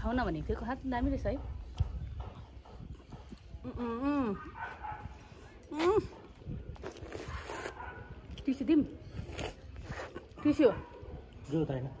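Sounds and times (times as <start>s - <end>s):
dog barking: 4.4s - 5.2s, 7.3s - 8.2s, 10.4s - 11.3s.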